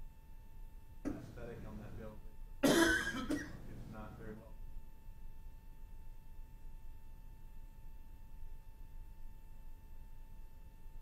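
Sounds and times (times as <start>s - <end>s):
faint speech in large room: 1.0s - 10.5s
loud cough: 2.6s - 3.7s.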